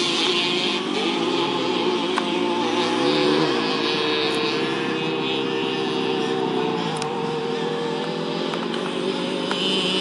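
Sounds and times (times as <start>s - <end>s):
go-kart engine running: 0.0s - 10.0s.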